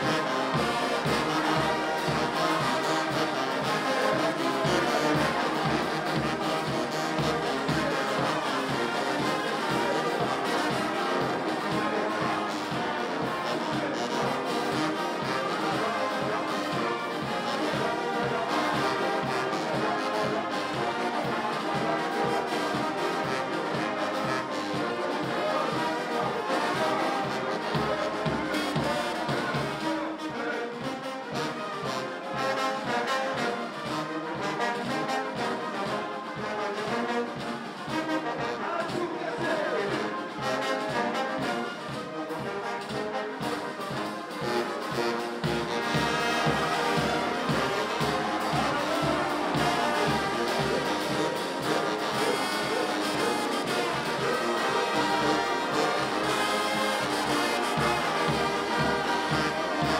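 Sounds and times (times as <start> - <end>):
brass band playing: 0.0 - 59.9.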